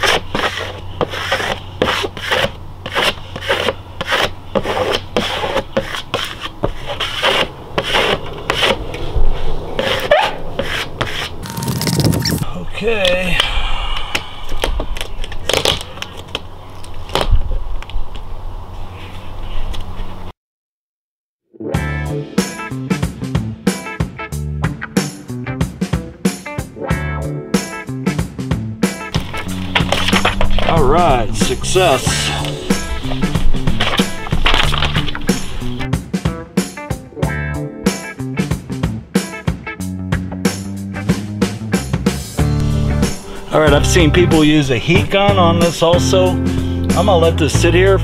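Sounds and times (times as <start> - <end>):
squeegee scraping decal: 0.0 - 12.4, 29.2 - 35.9
guitar music: 21.6 - 41.1, 42.4 - 48.0.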